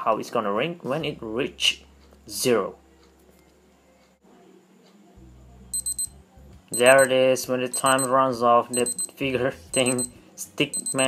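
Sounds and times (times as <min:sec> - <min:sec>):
high-pitched electronic beeps: 0:05.8 - 0:07.1, 0:07.7 - 0:08.1, 0:08.7 - 0:09.1, 0:09.8 - 0:10.1, 0:10.8 - 0:11.0.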